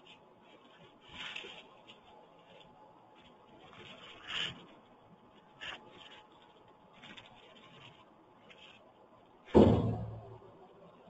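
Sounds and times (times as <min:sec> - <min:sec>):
loud thump with low ring: 0:09.6 - 0:10.4.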